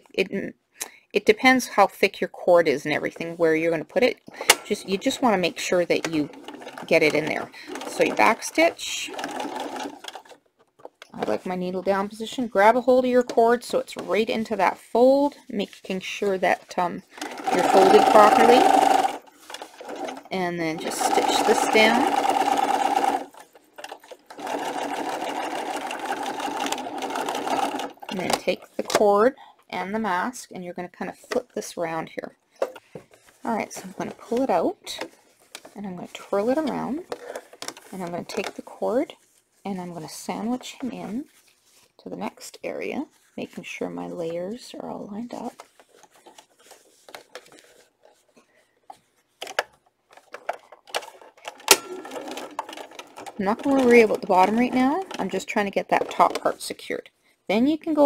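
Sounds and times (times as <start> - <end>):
sewing machine stitching: 4.4 - 10.4, 17.0 - 29.0, 50.1 - 56.7
fabric rustling: 4.6 - 10.5, 13.0 - 28.8, 32.4 - 56.2.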